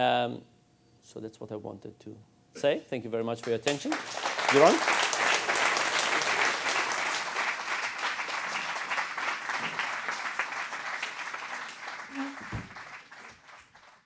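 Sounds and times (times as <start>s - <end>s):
audience applauding: 3.7s - 14.0s.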